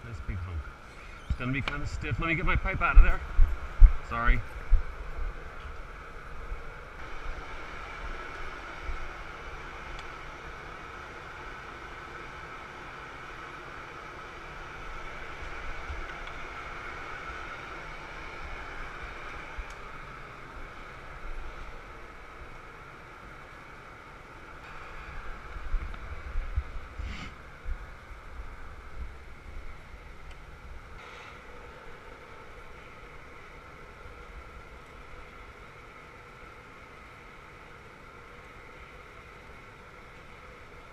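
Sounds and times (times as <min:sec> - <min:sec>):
low rumbling: 0:00.0 - 0:07.5
gas furnace roaring: 0:00.0 - 0:40.9.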